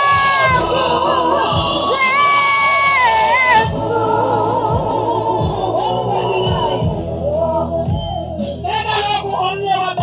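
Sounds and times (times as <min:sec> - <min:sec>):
high voice singing through loudspeakers: 0:00.0 - 0:10.0
voices singing gospel song: 0:00.0 - 0:10.0.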